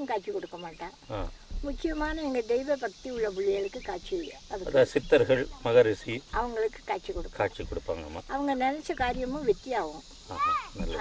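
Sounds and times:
crickets chirring: 0:00.0 - 0:11.0
person speaking: 0:01.1 - 0:01.3, 0:07.3 - 0:11.0.

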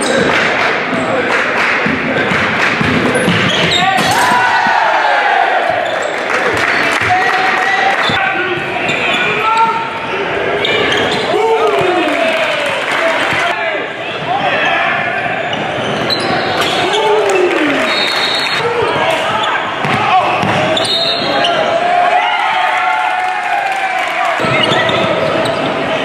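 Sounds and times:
players and spectators calling out: 0:00.0 - 0:26.0.

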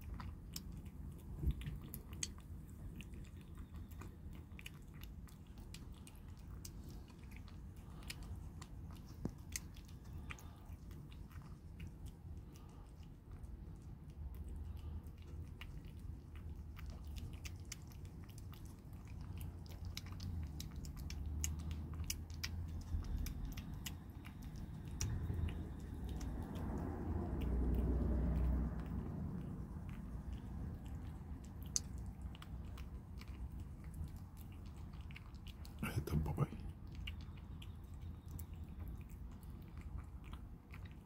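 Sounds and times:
kitten chewing wet food: 0:00.0 - 0:41.0
low rumble: 0:18.4 - 0:34.8.

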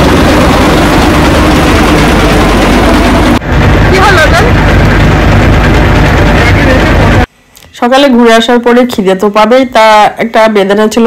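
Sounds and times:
boat engine running: 0:00.0 - 0:07.3.

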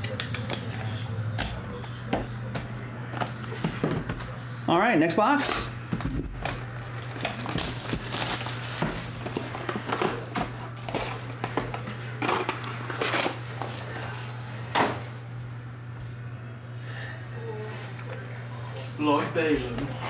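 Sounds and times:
steady low hum: 0:00.0 - 0:20.0
plastic wrap crinkling and tearing: 0:06.4 - 0:10.3.

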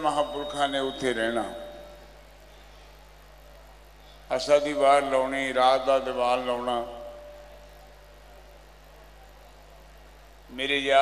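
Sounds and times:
faint background hiss: 0:00.0 - 0:11.0
steady low hum: 0:00.0 - 0:11.0.

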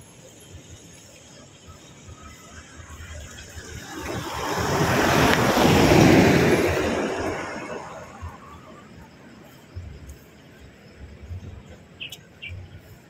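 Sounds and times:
road vehicle passing by: 0:00.2 - 0:09.9.

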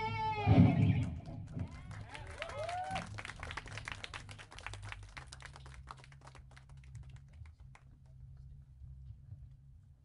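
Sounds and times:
audience clapping: 0:01.0 - 0:08.4.

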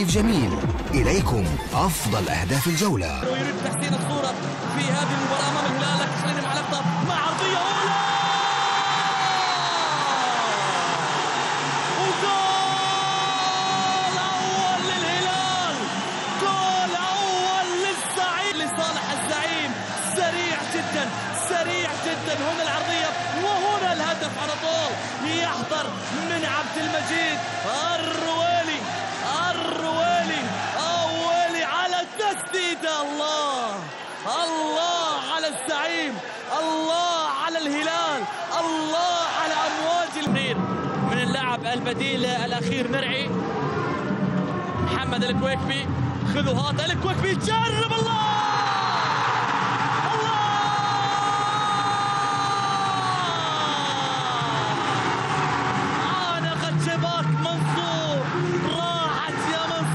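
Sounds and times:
man commentating excitedly: 0:00.0 - 0:03.2
stadium crowd noise: 0:00.0 - 0:59.9.

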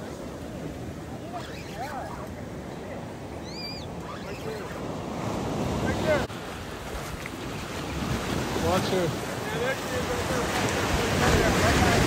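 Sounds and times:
surf washing on beach: 0:00.0 - 0:12.0.

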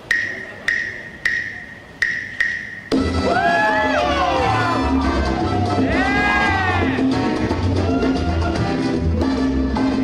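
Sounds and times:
salsa band with horns and bass: 0:02.9 - 0:10.0.

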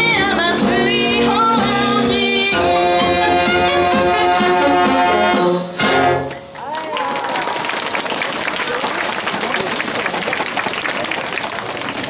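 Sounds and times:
brass band chord: 0:02.5 - 0:06.5
crowd clapping: 0:06.2 - 0:12.0
voices over applause: 0:06.2 - 0:12.0.

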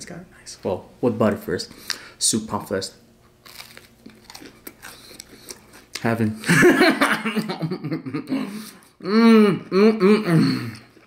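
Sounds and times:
person chewing with crunches: 0:03.4 - 0:06.2.

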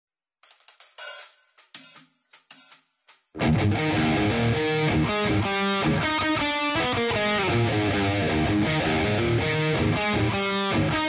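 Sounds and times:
hi-hat and cymbal strokes: 0:00.4 - 0:11.0.

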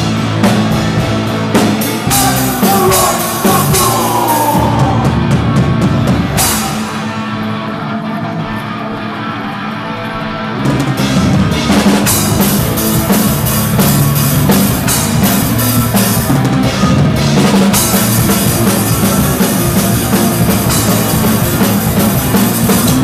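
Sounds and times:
drums and cymbals: 0:00.0 - 0:07.6, 0:10.7 - 0:23.0
live rock band playing: 0:00.0 - 0:23.0.

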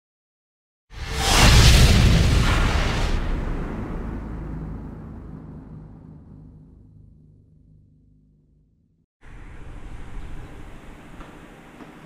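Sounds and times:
deep cinematic boom rumble: 0:01.2 - 0:09.0.

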